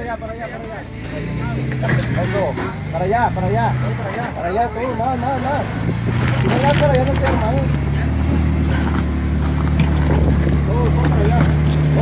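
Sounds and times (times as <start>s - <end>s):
engine running at low revs: 0.0s - 12.0s.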